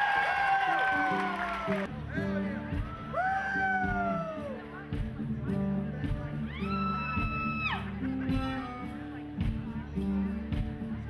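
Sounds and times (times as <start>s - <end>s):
string band music: 0.4s - 11.0s
plucked guitar: 0.7s - 11.0s.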